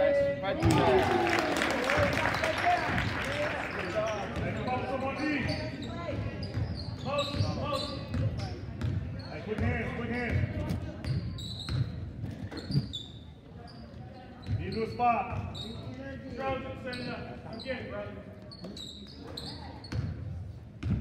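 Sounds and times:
spectators chattering: 0:00.0 - 0:20.8
sneaker squeaks: 0:03.6 - 0:21.0.

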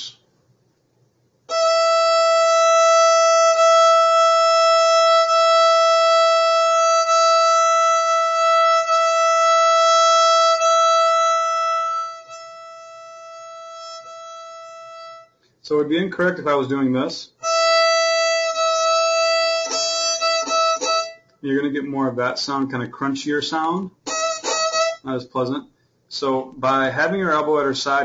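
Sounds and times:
violin bowed high note: 0:01.5 - 0:15.4, 0:17.4 - 0:21.3, 0:24.0 - 0:25.1.

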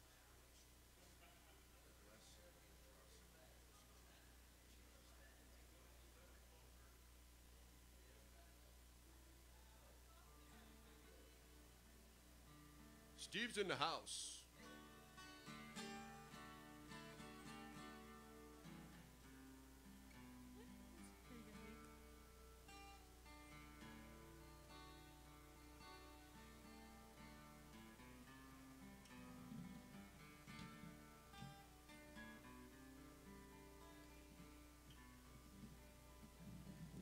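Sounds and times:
acoustic guitar chords: 0:12.4 - 0:37.0.

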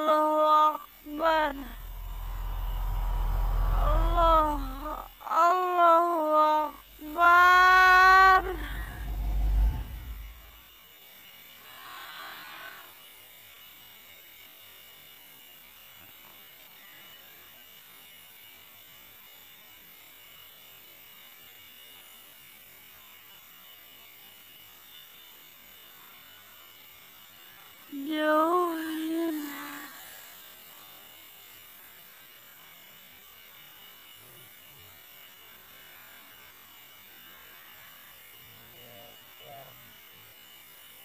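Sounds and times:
night insects buzzing: 0:00.0 - 0:41.0
soft hiss: 0:00.0 - 0:41.0
low rumble: 0:01.4 - 0:05.1, 0:06.8 - 0:10.6
person's wavering vocal cry: 0:03.8 - 0:08.9.

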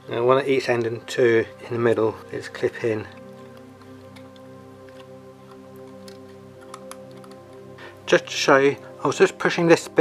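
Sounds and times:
soft background music: 0:00.0 - 0:10.0
small plastic parts clicking: 0:04.9 - 0:07.5.

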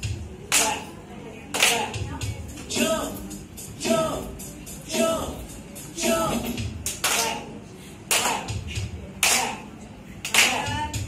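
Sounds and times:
group clapping in time: 0:06.8 - 0:08.6, 0:09.2 - 0:10.7.

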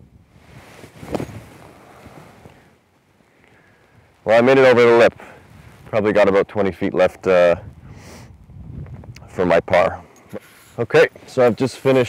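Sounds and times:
soft sand hiss: 0:00.1 - 0:08.5, 0:09.2 - 0:12.0.

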